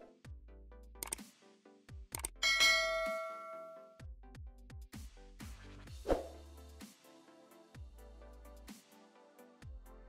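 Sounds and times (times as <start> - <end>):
bell strike ringing: 2.4 - 4.0
background music with drum beat: 4.0 - 9.9.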